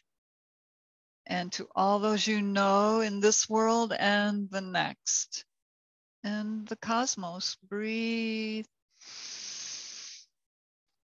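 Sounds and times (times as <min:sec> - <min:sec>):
woman breathing in deeply: 0:09.0 - 0:10.2.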